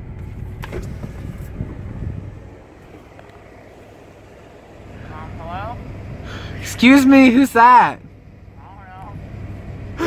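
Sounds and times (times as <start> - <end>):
car interior rumble: 0.0 - 10.0.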